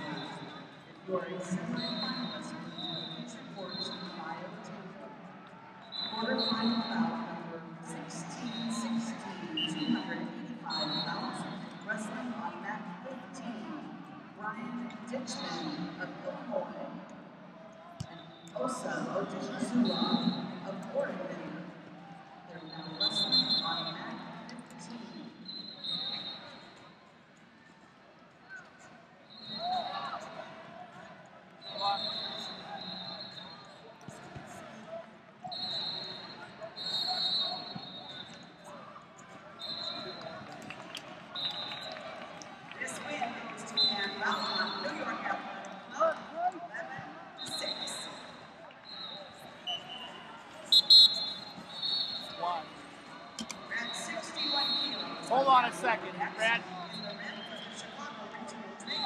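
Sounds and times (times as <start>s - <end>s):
voices of coaches and spectators: 0.0s - 59.0s
referee whistle blasts: 1.5s - 4.2s, 5.8s - 7.1s, 10.7s - 11.8s, 22.7s - 24.2s, 25.4s - 26.8s, 29.3s - 30.2s, 31.6s - 33.9s, 35.4s - 38.6s, 39.6s - 40.4s, 41.3s - 42.0s, 43.7s - 45.3s, 47.4s - 52.7s, 53.4s - 55.5s, 56.3s - 59.0s.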